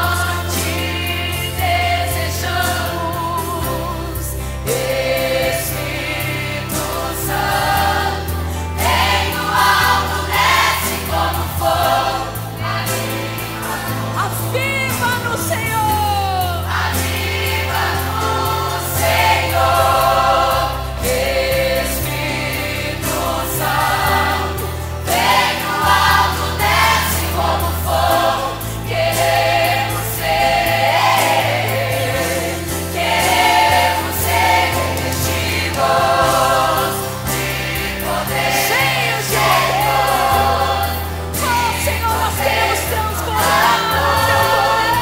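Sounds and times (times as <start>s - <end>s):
choir singing a hymn: 0.0s - 45.0s.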